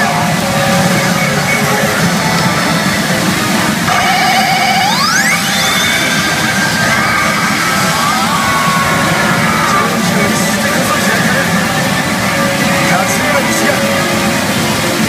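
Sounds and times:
trilling tone: 0.0s - 10.0s
rising electronic sweep: 0.0s - 10.7s
pachinko machine music and effects: 0.0s - 15.0s.

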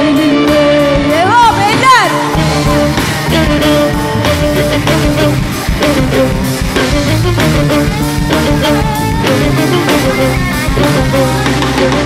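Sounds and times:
drum kit beat: 0.0s - 12.0s
guitar: 0.0s - 12.0s
live band playing: 0.0s - 12.0s.

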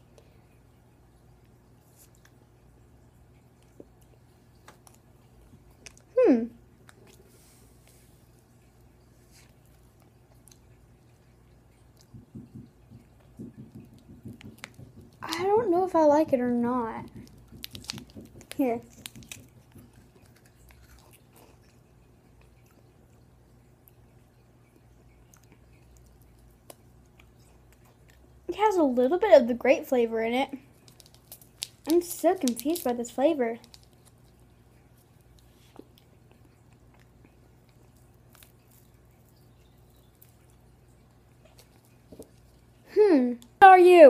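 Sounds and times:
quiet chewing: 1.4s - 15.4s, 17.0s - 28.5s, 30.6s - 32.9s, 33.6s - 43.6s
popsicle crunching: 11.8s - 22.9s, 30.6s - 43.6s.

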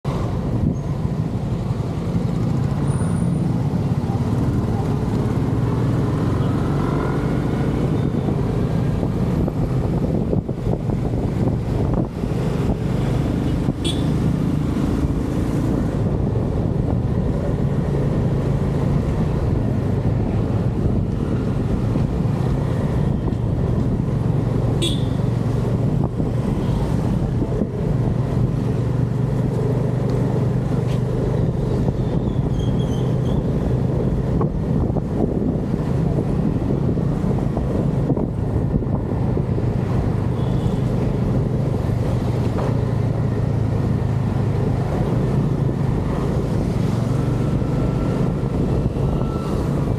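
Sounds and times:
passing traffic road noise: 0.0s - 49.9s.

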